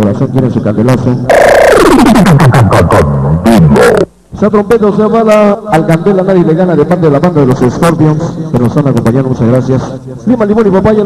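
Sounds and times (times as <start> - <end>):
rising and falling sweep: 1.3 - 4.1
synthesized tone sweeping downward: 1.3 - 4.1.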